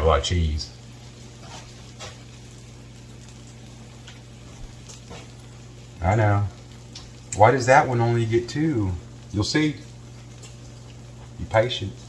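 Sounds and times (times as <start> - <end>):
bread sizzling in a pan: 0.0 - 12.0
low steady hum: 0.0 - 12.0.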